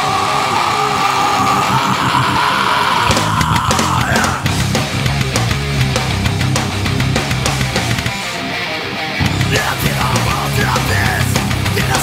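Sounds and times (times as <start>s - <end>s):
distorted electric guitars: 0.0s - 12.0s.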